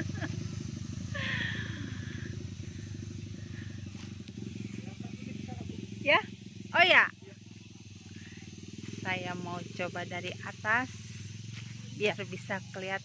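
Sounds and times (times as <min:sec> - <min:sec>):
quad bike engine driving away: 0:00.0 - 0:13.0.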